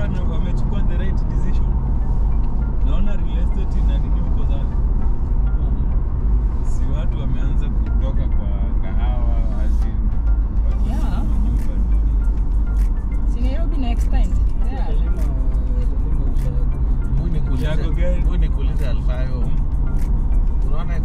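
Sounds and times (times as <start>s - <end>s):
car rumbling on highway: 0.0s - 21.0s.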